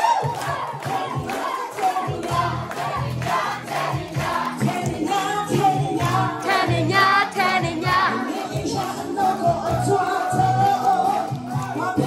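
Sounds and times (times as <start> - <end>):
audience cheering and shouting: 0.0 - 2.1.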